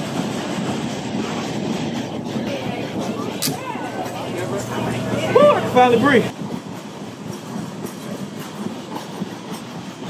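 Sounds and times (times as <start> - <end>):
freight train rolling past: 0.0 - 10.0
wheels clacking on rail joints: 0.0 - 10.0.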